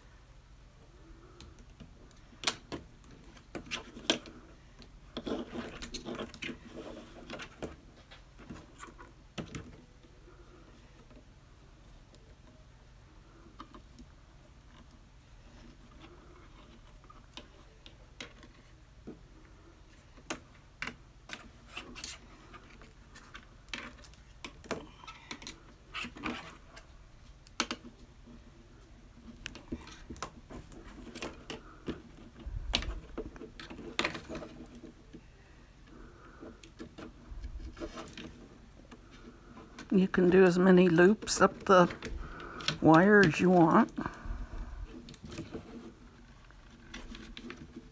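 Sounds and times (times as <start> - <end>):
wire clicking and scraping: 1.1 - 12.6, 13.2 - 47.9.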